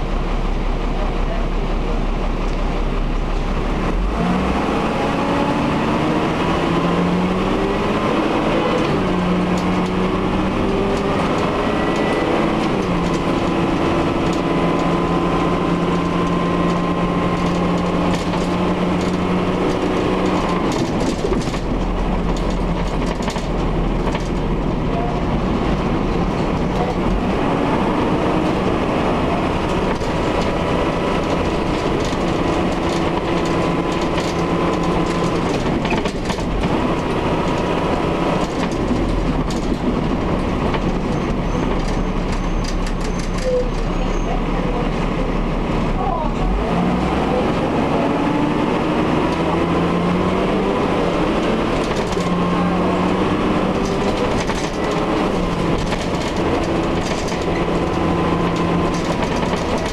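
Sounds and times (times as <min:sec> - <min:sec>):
bus diesel engine running: 0:00.0 - 0:59.9
bodywork rattles: 0:10.7 - 0:27.1, 0:29.6 - 0:43.9, 0:53.4 - 0:59.9.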